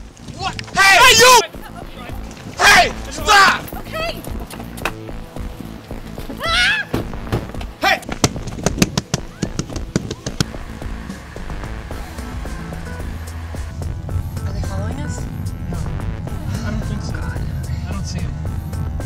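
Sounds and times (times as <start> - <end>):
film music: 0.0 - 19.0
car engine running: 9.8 - 17.5.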